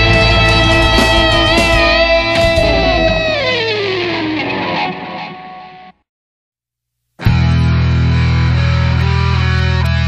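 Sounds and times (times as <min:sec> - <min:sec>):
distorted electric guitar chord: 0:00.0 - 0:06.0.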